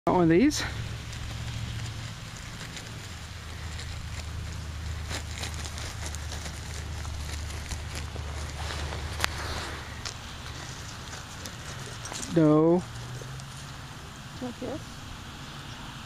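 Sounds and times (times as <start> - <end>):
low rumble: 0.1 - 15.2
rustling movement on snowy grass: 0.1 - 15.4.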